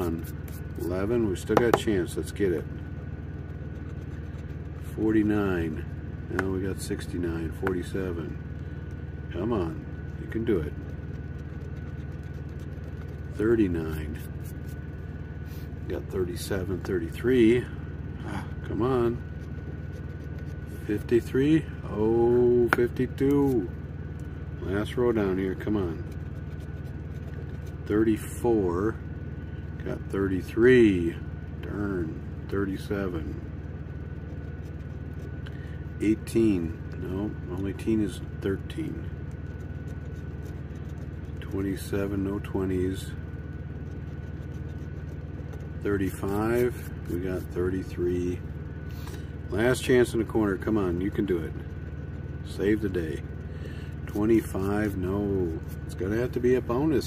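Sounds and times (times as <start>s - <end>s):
coin scratching lottery ticket: 0.0s - 2.7s, 3.3s - 5.8s, 9.3s - 14.9s, 18.6s - 23.8s, 24.6s - 28.5s, 34.1s - 48.2s, 49.1s - 57.0s
low engine-like hum: 0.0s - 57.0s
thin steady whine: 0.0s - 57.0s.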